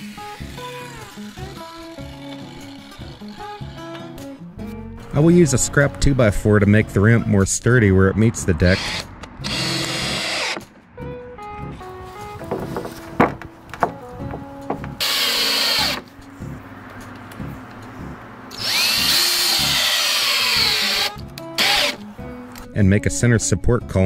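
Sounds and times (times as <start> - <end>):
soft background music: 0.0 - 24.0
power drill driving screws: 8.7 - 10.6, 15.0 - 16.1, 18.5 - 22.0.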